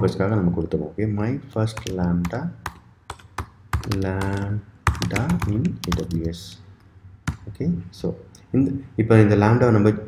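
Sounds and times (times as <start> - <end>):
person speaking: 0.0 - 10.0
keyboard keys clicking: 3.1 - 6.3.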